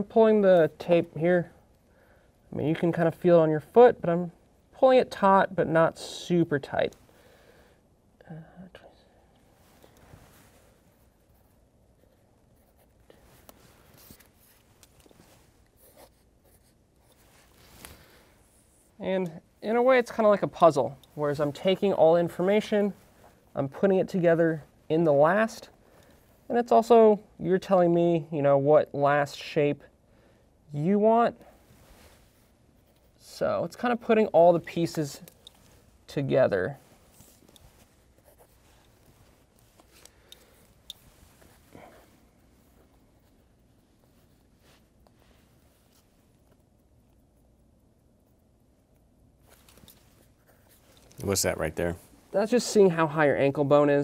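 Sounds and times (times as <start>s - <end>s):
pencil scratching on paper: 10.9s - 13.2s, 15.7s - 17.3s.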